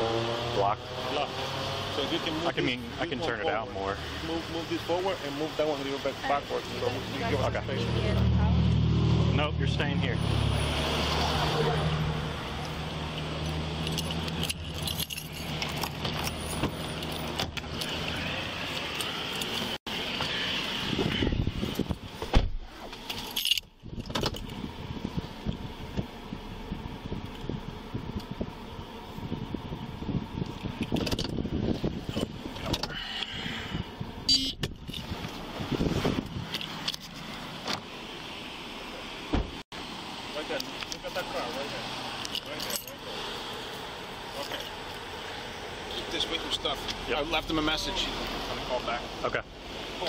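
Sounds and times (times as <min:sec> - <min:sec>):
keys and gear jingling: 0:13.2 - 0:18.2, 0:18.8 - 0:19.8, 0:23.1 - 0:24.6, 0:42.2 - 0:43.0
vehicle engine running: 0:24.4 - 0:36.5.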